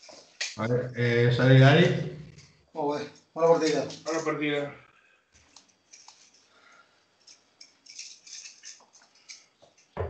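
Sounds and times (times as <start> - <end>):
faint irregular clicks and rattles: 2.4 - 10.0.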